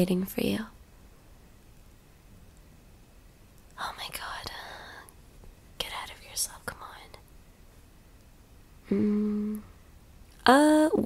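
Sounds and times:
woman whispering: 0:03.8 - 0:05.1, 0:05.8 - 0:07.2.

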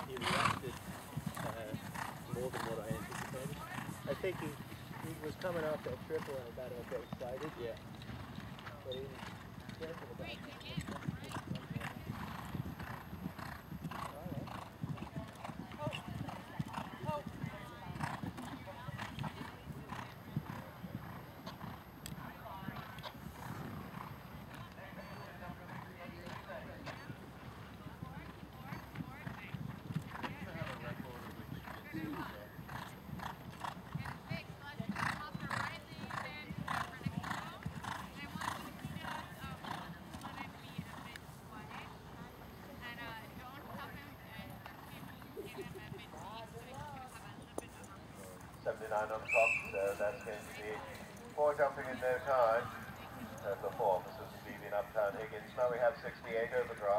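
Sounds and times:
horse hoofbeats on dirt: 0:00.0 - 0:42.0.

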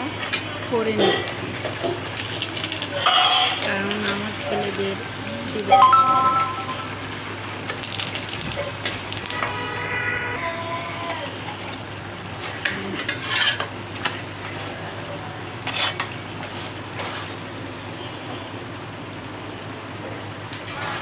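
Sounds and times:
bread sizzling in hot oil: 0:00.7 - 0:10.0, 0:11.4 - 0:21.0
metal spatula scraping a pan: 0:02.9 - 0:04.8, 0:12.4 - 0:14.2, 0:15.6 - 0:17.4, 0:20.7 - 0:21.0.

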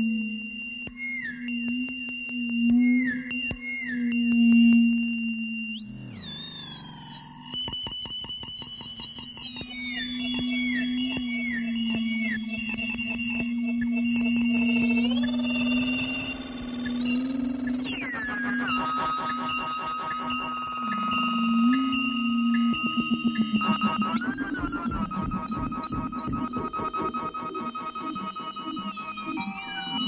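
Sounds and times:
electronic feedback music: 0:00.0 - 0:30.0
high whistling tones: 0:00.0 - 0:30.0.

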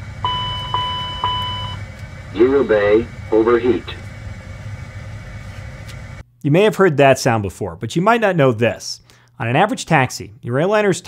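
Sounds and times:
cockpit low drone: 0:00.0 - 0:06.2.

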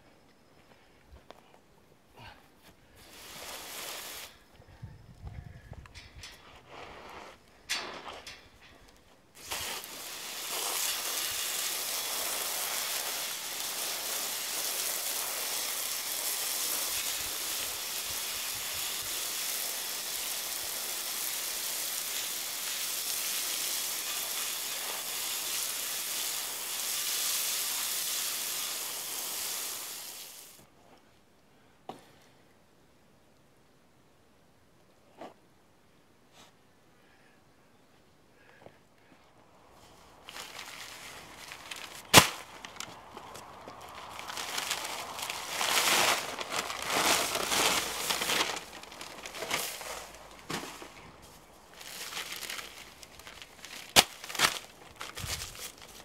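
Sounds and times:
hose nozzle spraying water: 0:03.0 - 0:04.4, 0:09.4 - 0:30.6.

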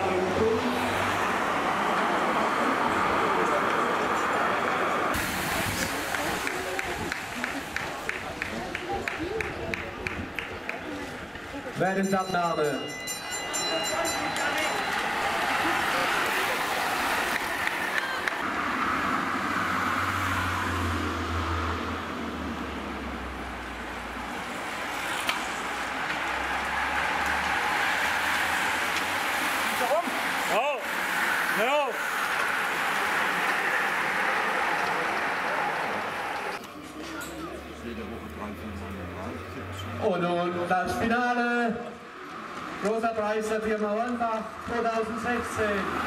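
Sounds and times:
spectators' voices: 0:00.0 - 0:18.5, 0:24.3 - 0:40.0
road bikes rushing past: 0:00.0 - 0:46.0.

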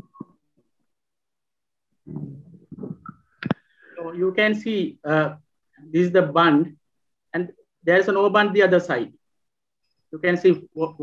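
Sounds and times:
muffled hesitation sounds: 0:02.1 - 0:04.2.

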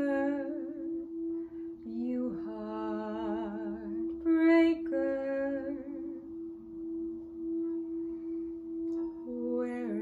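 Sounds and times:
singing bowl tone: 0:00.0 - 0:10.0.

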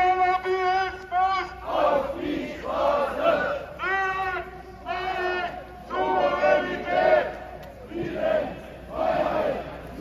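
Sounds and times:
crowd chanting in unison: 0:01.4 - 0:03.8, 0:05.0 - 0:10.0.

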